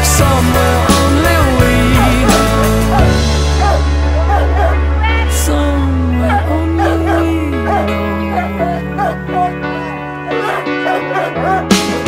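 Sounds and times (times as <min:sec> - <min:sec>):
background music: 0:00.0 - 0:12.0
dog whining and yipping: 0:06.8 - 0:11.7.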